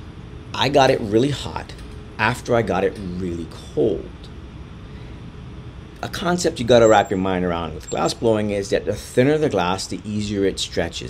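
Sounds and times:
furnace burners roaring: 0.0s - 11.0s
ventilation fans running: 0.0s - 11.0s.

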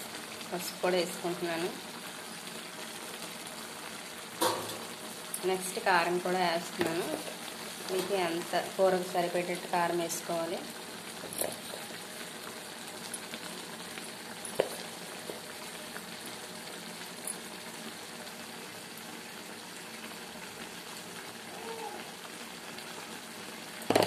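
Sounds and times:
curry bubbling in a pan: 0.0s - 24.0s.

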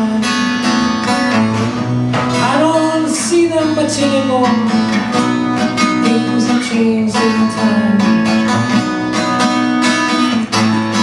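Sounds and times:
man singing: 0.0s - 8.6s
acoustic guitar: 0.0s - 11.0s.

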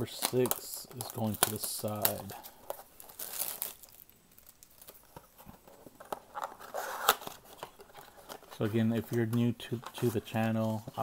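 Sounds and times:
cardboard rustling and crackling: 0.0s - 11.0s
plastic wrapping crinkling: 0.0s - 11.0s.

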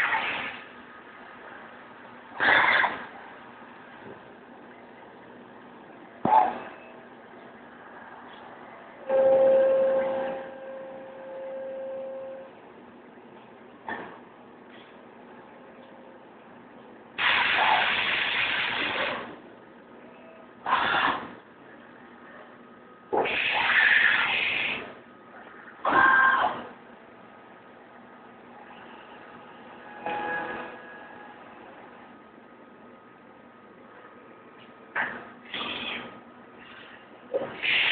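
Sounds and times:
machining center running: 3.0s - 37.9s
bursts of loud machine noise: 17.2s - 19.4s, 20.6s - 21.4s, 23.1s - 25.0s.

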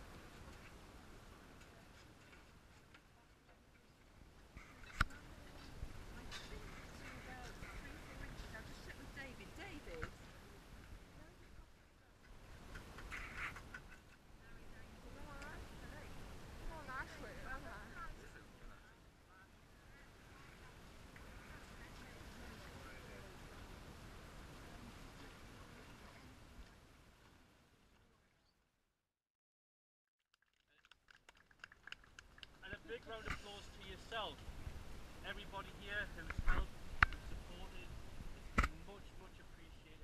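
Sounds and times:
people talking: 3.1s - 4.0s, 4.6s - 12.2s, 14.4s - 23.8s, 24.5s - 26.8s, 32.6s - 34.4s, 35.3s - 36.7s, 37.4s - 40.0s
people clapping: 30.3s - 32.8s.

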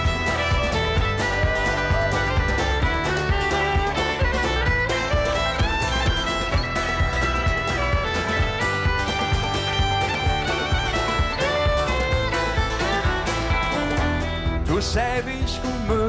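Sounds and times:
fiddle playing melody: 0.0s - 15.4s
folk-rock band with steady beat: 0.0s - 16.0s.

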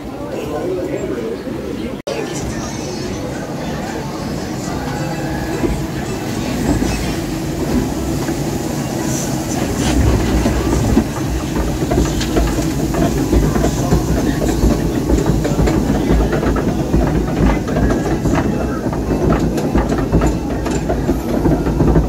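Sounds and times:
lift hill conveyor clatter: 2.1s - 22.0s
rushing water: 2.3s - 22.0s.

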